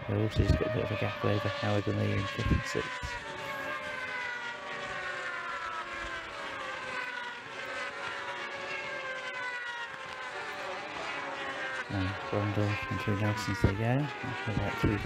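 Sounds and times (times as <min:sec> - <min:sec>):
racing motorcycles passing: 0:00.0 - 0:15.0.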